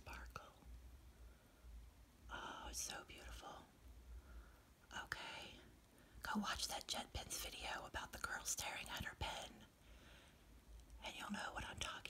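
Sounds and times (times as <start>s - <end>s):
person whispering: 0.0s - 0.6s, 2.3s - 3.7s, 4.9s - 9.7s, 11.0s - 12.0s.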